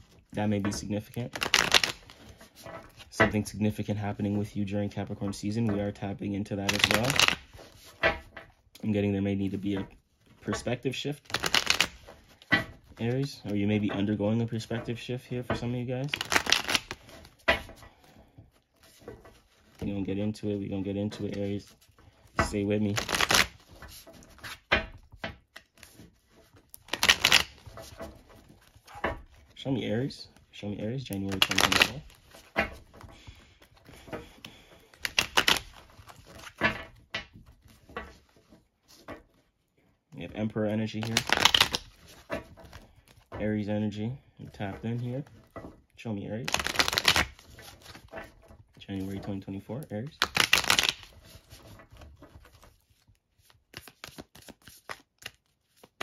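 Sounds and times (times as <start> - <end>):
cards being riffle-shuffled: 0.0 - 5.9, 6.5 - 8.2, 8.8 - 39.5, 40.3 - 45.7, 46.4 - 56.0.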